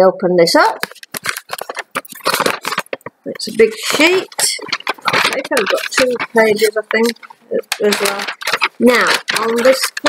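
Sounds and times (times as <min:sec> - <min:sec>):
paper sheet rustling and crinkling: 0:00.6 - 0:10.0.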